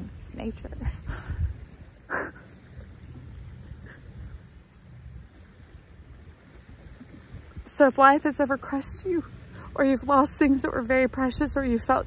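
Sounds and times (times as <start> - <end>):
insect chirping: 0.0 - 12.0
wind buffeting microphone: 0.0 - 12.0
breathy laugh: 2.1 - 2.9.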